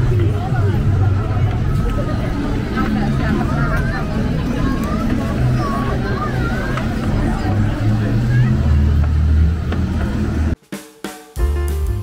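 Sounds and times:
crowd chatter: 0.0 - 10.6
bass-heavy music with drum beat: 10.6 - 12.0.

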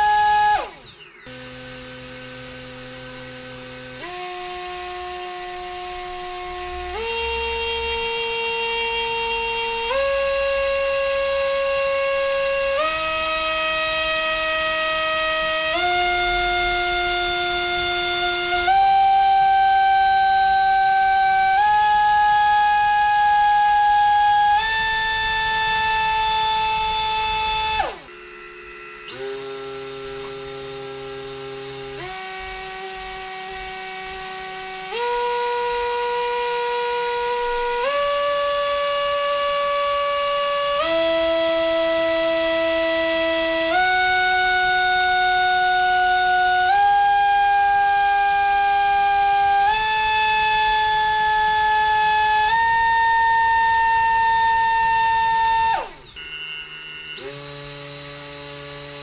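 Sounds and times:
drone motors whining: 0.0 - 59.0.

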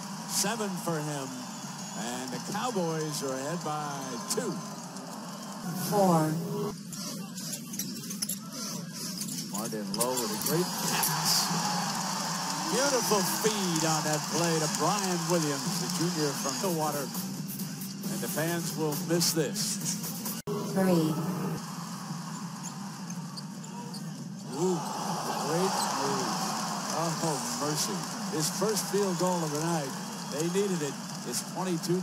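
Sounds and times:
crowd murmur: 24.5 - 32.0.

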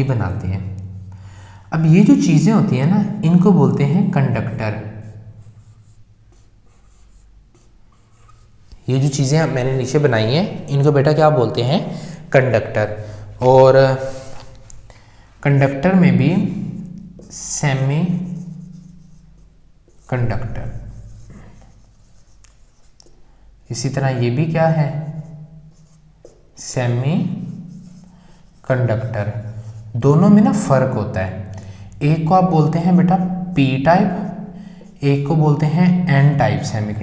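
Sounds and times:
marker pen strokes on whiteboard: 4.7 - 10.7, 11.8 - 14.9, 16.4 - 23.2, 24.9 - 30.9, 32.6 - 35.0.

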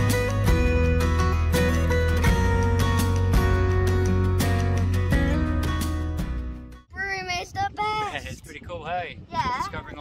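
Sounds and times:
acoustic guitar music: 0.0 - 7.4.

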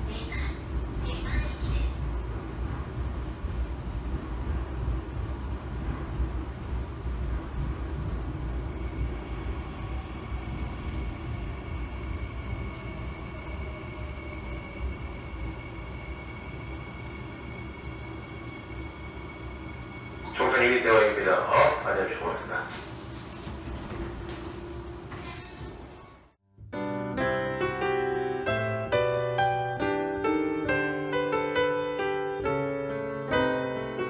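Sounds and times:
subway train rumbling on track: 0.0 - 26.4, 27.2 - 34.0
faint whine sliding down: 2.2 - 21.0.

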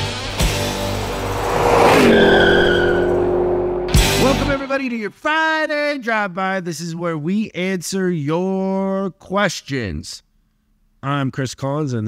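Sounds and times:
tyre screech: 0.7 - 4.5.

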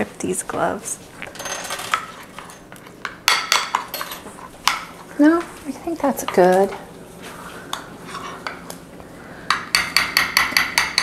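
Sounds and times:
utensils and dishes clinking: 1.3 - 5.4.

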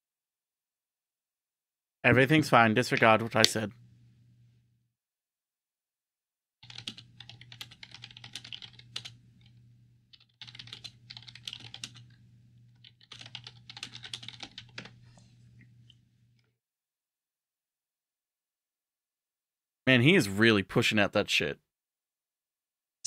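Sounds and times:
low steady hum: 2.1 - 4.7, 6.9 - 16.4
computer keyboard typing: 6.6 - 15.0.

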